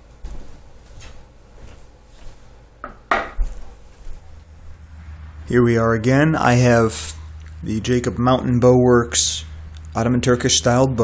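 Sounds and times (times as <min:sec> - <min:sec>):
footsteps on hardwood floor: 0:00.0 - 0:04.8.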